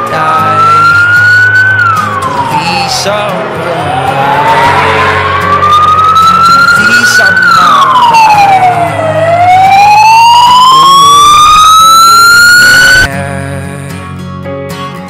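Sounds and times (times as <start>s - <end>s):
siren wailing: 0.0s - 13.1s.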